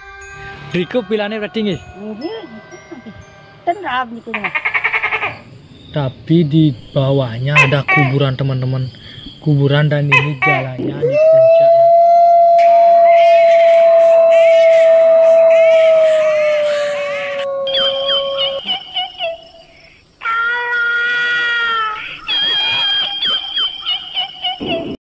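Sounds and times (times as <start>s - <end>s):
long eerie howl: 0.0s - 5.3s, 10.4s - 18.7s
shrill wailing cries: 0.0s - 5.5s, 7.5s - 8.4s, 10.1s - 19.6s, 20.2s - 24.7s
chirping sweeps: 0.0s - 10.9s, 22.0s - 25.0s.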